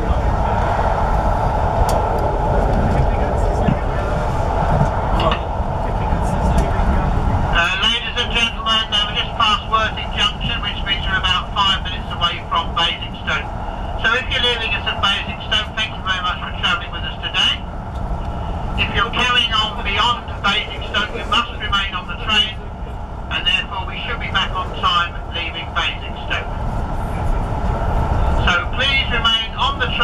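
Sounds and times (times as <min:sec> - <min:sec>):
train coach rumbling on rails: 0:00.0 - 0:30.0.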